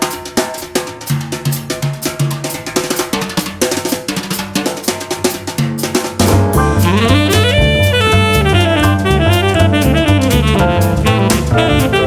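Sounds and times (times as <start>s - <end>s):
jazz drum solo: 0.0s - 12.0s
bass notes: 6.2s - 12.0s.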